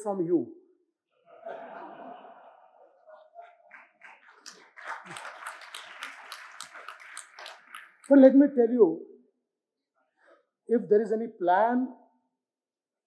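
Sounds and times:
audience laughter: 1.2s - 5.6s
audience applause: 1.7s - 8.2s
person speaking: 8.0s - 9.2s, 10.6s - 12.0s.

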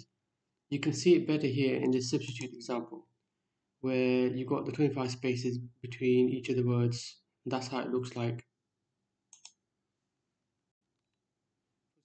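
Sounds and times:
computer mouse clicks: 2.2s - 2.6s, 9.3s - 9.6s.

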